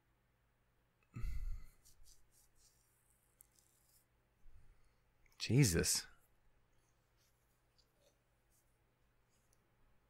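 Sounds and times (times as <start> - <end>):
man sighing into microphone: 1.1 - 1.8
faint clicks and rustles: 1.8 - 5.4, 6.6 - 9.7.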